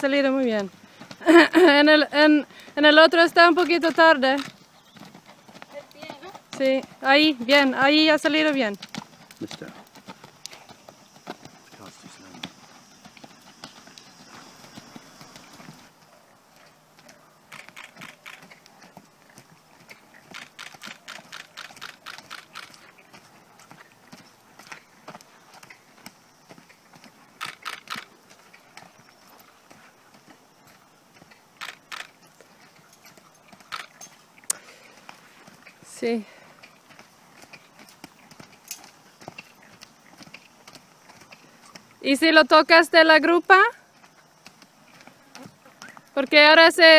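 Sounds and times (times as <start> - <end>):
horse hoofbeats on sand: 0.0 - 46.9.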